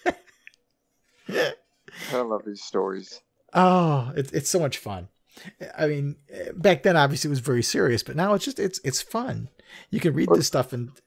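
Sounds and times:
man laughing: 1.3s - 1.6s.

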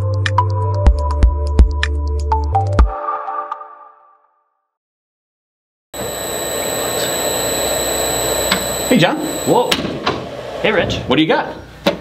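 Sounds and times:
thin steady high whine: 6.0s - 9.9s.

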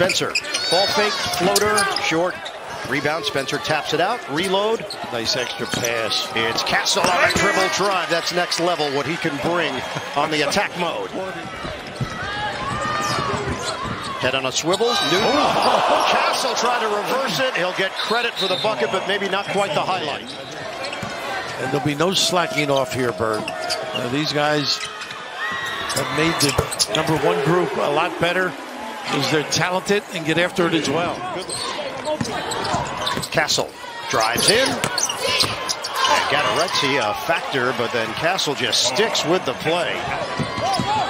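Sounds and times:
sneakers squeaking: 0.0s - 3.6s, 4.3s - 7.9s, 11.3s - 16.4s, 17.9s - 27.4s, 31.1s - 37.1s, 40.1s - 41.0s
arena crowd murmur: 0.0s - 41.0s
crowd murmur: 25.2s - 29.6s.

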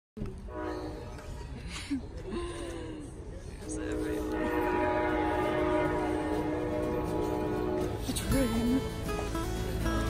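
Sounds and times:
train horn blast: 0.4s - 1.4s, 3.6s - 8.7s.

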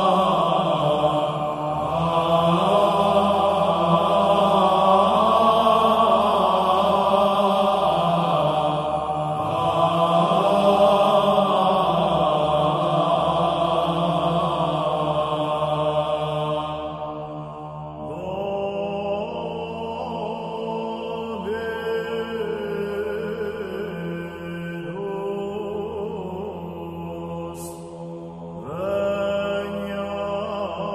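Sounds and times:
choir chanting: 0.0s - 30.9s.

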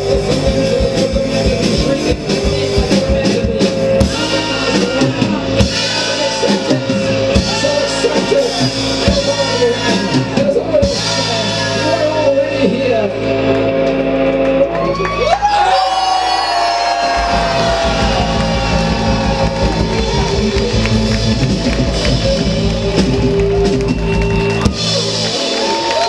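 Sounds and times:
live rock band playing: 0.0s - 15.8s, 16.5s - 26.0s.

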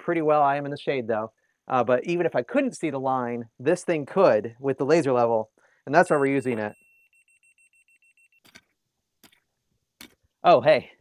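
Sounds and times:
rapid high beeping: 6.0s - 8.5s.

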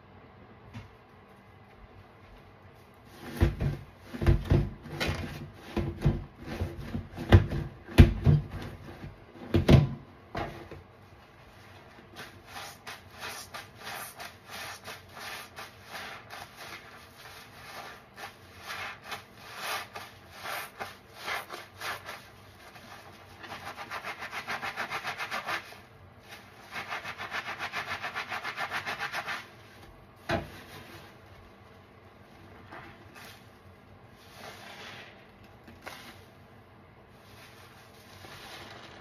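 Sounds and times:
sponge scrubbing: 11.4s - 36.4s, 37.1s - 39.0s
soapy sponges squelching: 12.2s - 29.5s, 34.2s - 36.2s.

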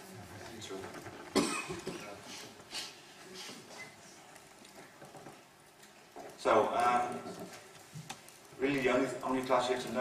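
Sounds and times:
person coughing: 1.4s - 2.2s.

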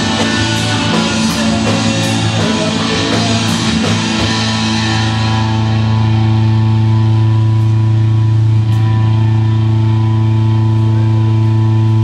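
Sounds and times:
sustained rock guitar chord: 0.0s - 12.0s.

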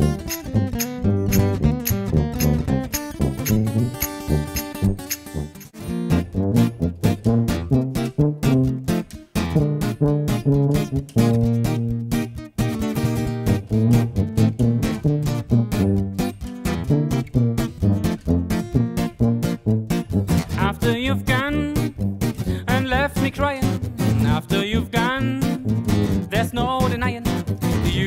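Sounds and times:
strummed guitar: 0.0s - 28.0s
brass horn melody: 3.2s - 8.9s, 9.6s - 12.0s, 13.0s - 16.1s.

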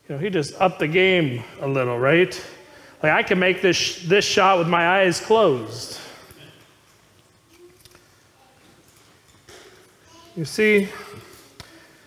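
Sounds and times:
soft breath: 2.4s - 3.0s.

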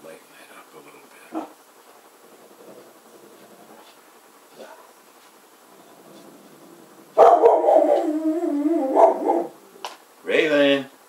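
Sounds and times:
dog howling call: 7.2s - 9.8s.

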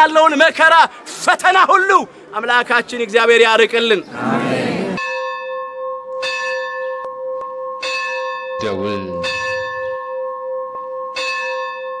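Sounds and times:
bell ringing: 5.0s - 12.0s.

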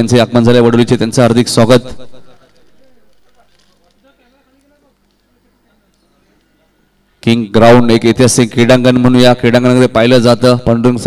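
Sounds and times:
man commentating: 0.0s - 11.0s.

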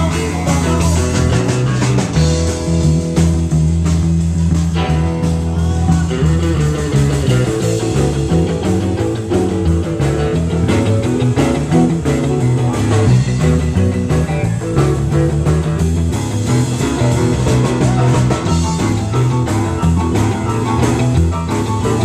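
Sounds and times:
live rock band blues shuffle: 0.0s - 22.0s.

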